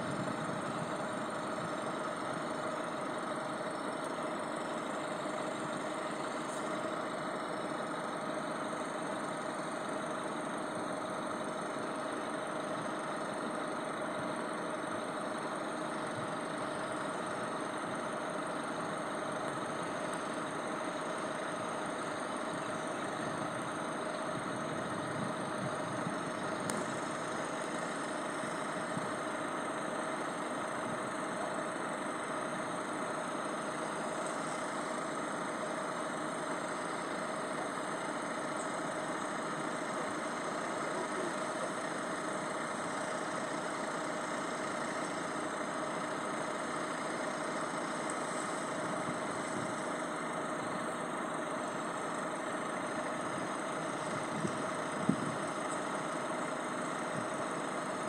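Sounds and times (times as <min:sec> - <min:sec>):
vehicle engine idling: 0:00.0 - 0:58.0.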